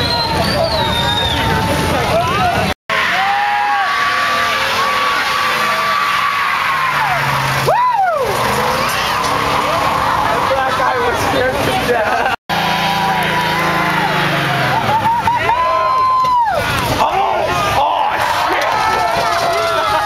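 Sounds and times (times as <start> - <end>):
car tyres squealing: 0.0 - 20.0
crowd shouting: 0.0 - 20.0
engines droning: 0.0 - 20.0.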